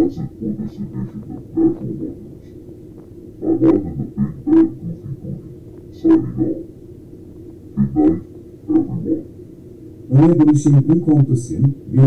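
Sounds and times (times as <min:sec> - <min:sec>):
muffled man's voice: 0:00.0 - 0:06.8, 0:07.5 - 0:09.4, 0:10.0 - 0:12.0
low background rumble: 0:00.0 - 0:12.0.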